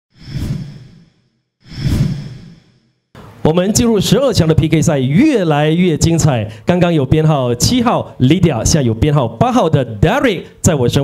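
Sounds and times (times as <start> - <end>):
whoosh sound effects: 0.1 - 2.9.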